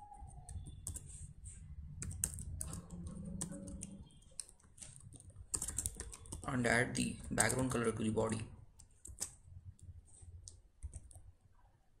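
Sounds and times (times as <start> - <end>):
computer keyboard typing: 0.0 - 11.3.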